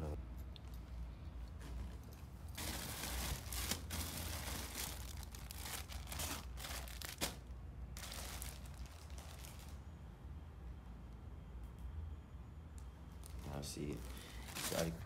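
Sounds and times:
plastic packaging crinkling: 0:02.5 - 0:09.8, 0:13.2 - 0:15.0.

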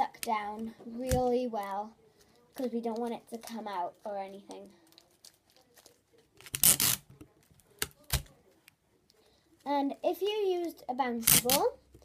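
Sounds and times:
tape ripping off roll: 0:06.4 - 0:07.1, 0:11.2 - 0:11.7.

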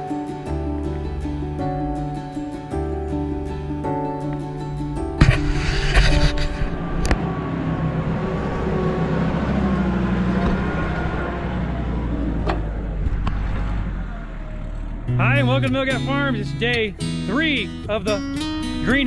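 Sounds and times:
tractor engine running: 0:00.0 - 0:19.0.

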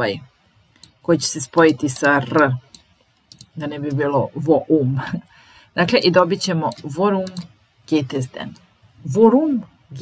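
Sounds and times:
woman talking: 0:00.0 - 0:00.3, 0:01.0 - 0:02.7, 0:03.4 - 0:10.0
computer keyboard typing: 0:00.8 - 0:03.6, 0:05.9 - 0:07.5.

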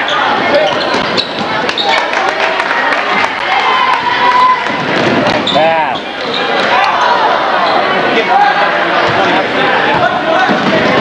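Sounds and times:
people shouting: 0:03.4 - 0:06.0.

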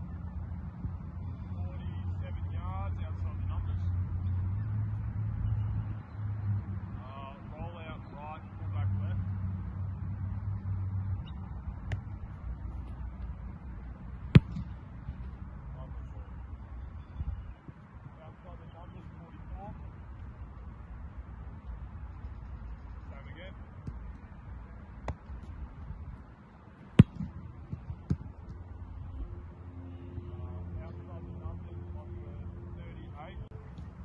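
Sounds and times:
boot kicking football thud: 0:14.3 - 0:14.7, 0:27.0 - 0:28.2.

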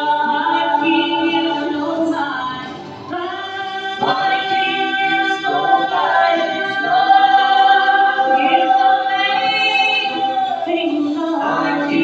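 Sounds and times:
gospel quartet singing in harmony: 0:00.0 - 0:12.0.

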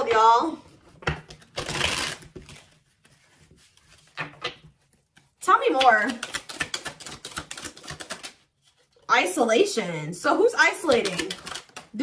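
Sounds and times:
cards being shuffled: 0:00.9 - 0:09.1, 0:10.8 - 0:12.0.

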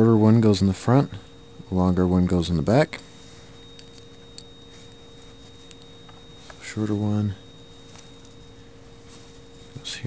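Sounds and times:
faint electrical hum: 0:00.0 - 0:10.0
thin high whine: 0:00.0 - 0:10.0.

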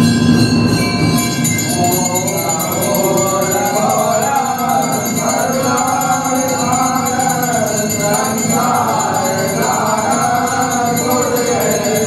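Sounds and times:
steady percussion beat: 0:00.0 - 0:12.0
group of voices singing a hymn: 0:01.4 - 0:12.0.

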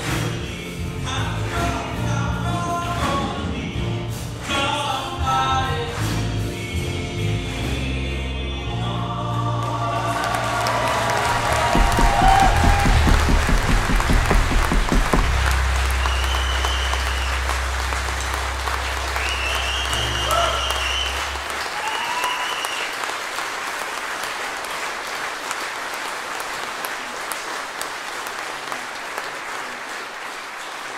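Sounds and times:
live band playing: 0:00.0 - 0:09.6, 0:10.5 - 0:21.6
audience applause: 0:09.6 - 0:30.9
quick drum beats: 0:10.9 - 0:21.4
low bass note ringing: 0:11.8 - 0:21.4.

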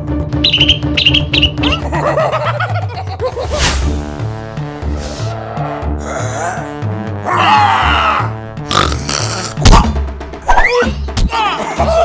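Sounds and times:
cartoon music with bass: 0:00.0 - 0:12.0.

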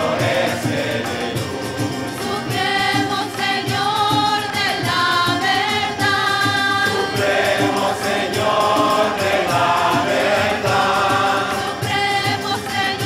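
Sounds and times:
acoustic guitar: 0:00.0 - 0:13.0
choir singing: 0:00.0 - 0:13.0
hand percussion beat: 0:00.0 - 0:13.0
harmonium: 0:00.0 - 0:13.0
violin: 0:00.0 - 0:13.0.

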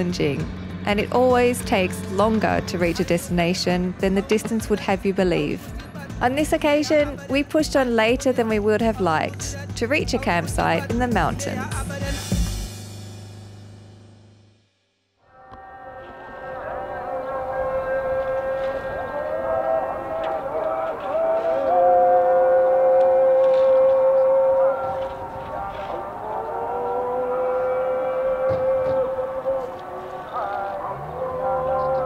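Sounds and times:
call to prayer over loudspeaker: 0:00.0 - 0:12.2, 0:15.6 - 0:32.0.

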